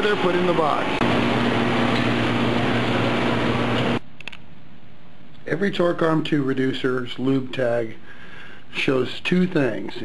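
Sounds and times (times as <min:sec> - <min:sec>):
machinery and ventilation hum: 0:00.0 - 0:10.0.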